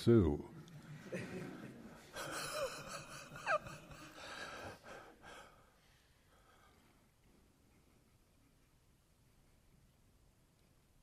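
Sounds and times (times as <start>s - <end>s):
man wheezing laughter: 1.1s - 5.4s.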